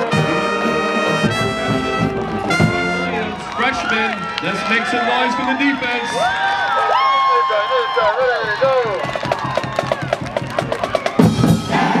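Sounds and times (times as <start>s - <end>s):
low brass and drums: 0.0s - 3.6s, 8.4s - 12.0s
drumline tapping fast beat: 1.3s - 3.2s, 8.3s - 12.0s
people shouting: 1.4s - 12.0s.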